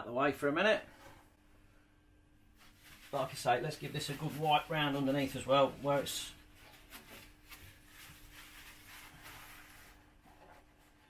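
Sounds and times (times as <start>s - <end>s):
paper towel rubbing: 2.5s - 11.0s.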